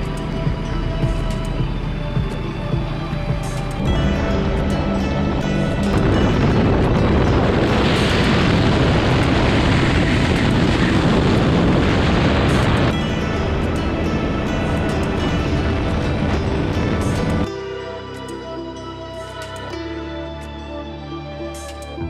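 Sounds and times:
speed boat rushing noise: 0.0s - 19.4s
background music: 0.0s - 22.0s.

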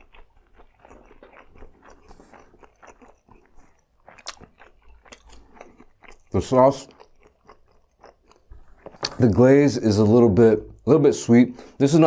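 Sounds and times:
mouth chewing sounds: 0.0s - 9.2s.

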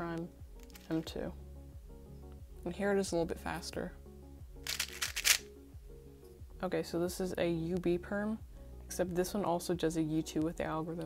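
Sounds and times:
background music: 0.0s - 11.0s
puzzle cube clicking: 4.6s - 5.5s.

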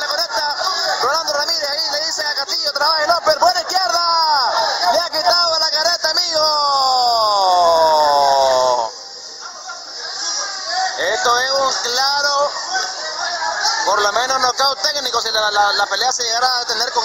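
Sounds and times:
men shouting: 0.0s - 14.9s
steady high hiss: 0.0s - 17.0s
man's long falling cry: 6.7s - 8.9s.

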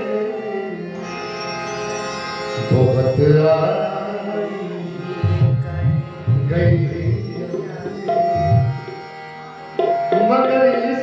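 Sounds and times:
harmonium chords: 0.0s - 11.0s
drum strokes: 9.8s - 10.4s.

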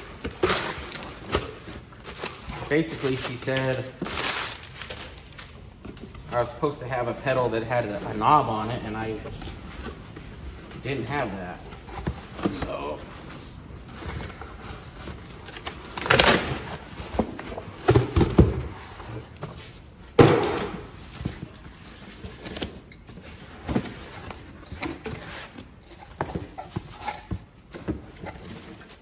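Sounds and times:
cardboard boxes scraping: 0.0s - 19.8s, 20.9s - 29.0s.

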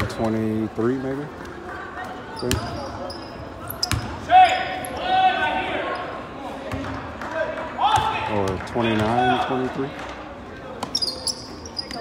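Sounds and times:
sneaker squeaks: 2.3s - 5.1s, 10.7s - 12.0s.

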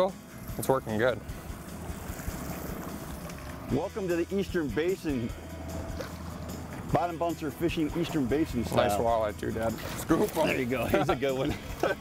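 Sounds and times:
wind: 0.0s - 12.0s
water noise from boat: 5.0s - 12.0s.

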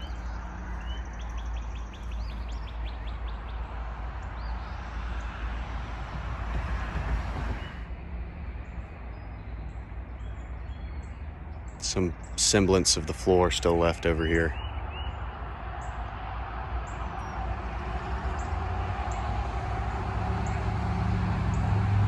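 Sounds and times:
birds chirping: 0.0s - 6.6s, 8.5s - 21.9s
steady rushing background: 0.0s - 22.0s.

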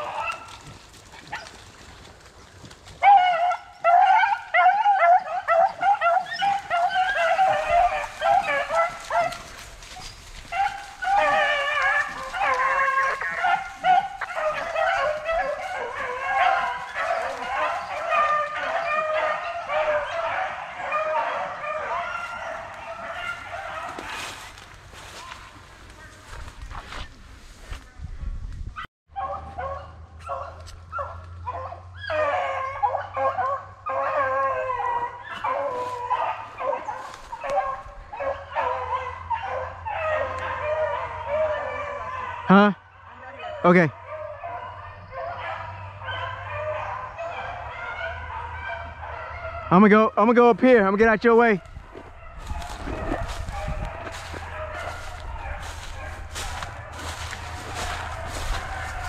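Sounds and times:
dogs baying: 0.0s - 27.0s, 28.8s - 59.0s.

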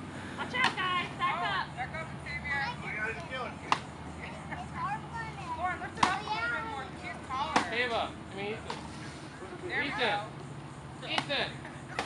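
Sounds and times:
outdoor background noise: 0.0s - 12.0s
children chattering and calling: 0.2s - 12.0s.

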